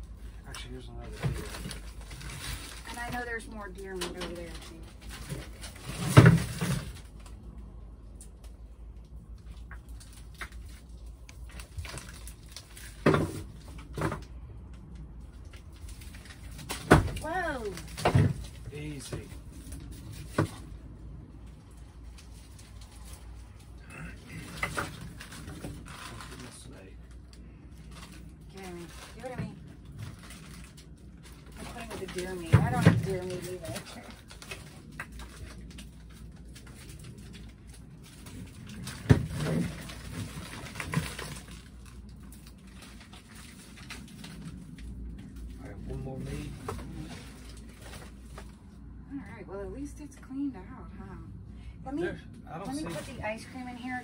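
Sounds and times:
frozen packages knocking: 0:28.6 - 0:35.8.

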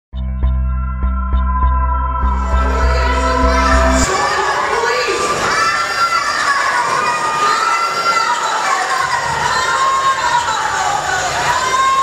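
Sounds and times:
children cheering and screaming: 0:02.3 - 0:12.0.

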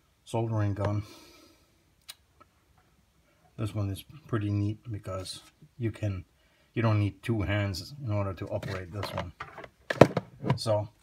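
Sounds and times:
faint hiss: 0:00.0 - 0:08.4.

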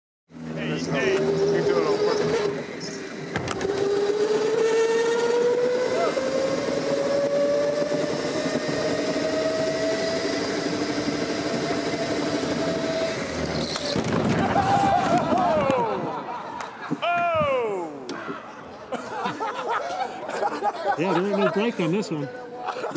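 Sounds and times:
go-kart motor whining: 0:00.3 - 0:16.2
kart crashing into barrier: 0:13.4 - 0:15.8.

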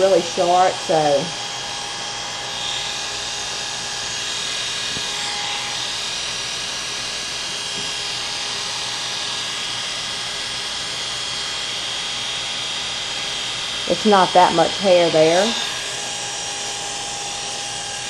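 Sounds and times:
electric hair clippers buzzing: 0:00.0 - 0:18.0.

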